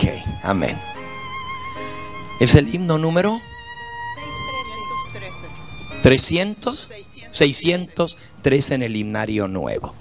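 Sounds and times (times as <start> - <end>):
soft instrumental music: 0.0 - 9.9.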